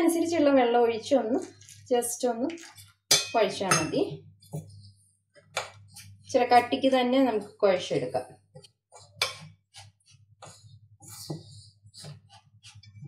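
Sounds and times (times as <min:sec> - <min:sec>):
woman talking: 0:00.0 - 0:02.6, 0:03.3 - 0:04.2, 0:06.3 - 0:08.3
spoon scraping metal bowl: 0:02.5 - 0:13.0.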